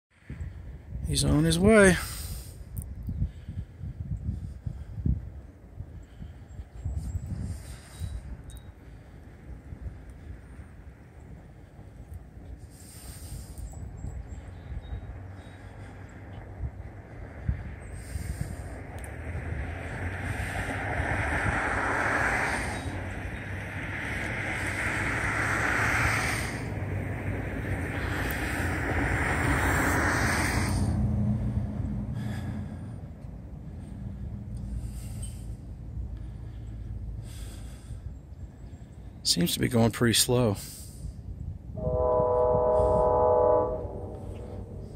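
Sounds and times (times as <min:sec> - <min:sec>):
wind buffeting microphone: 0:00.1 - 0:39.2, 0:41.0 - 0:44.9
passenger train rushing rumble: 0:13.8 - 0:36.2, 0:41.6 - 0:44.9.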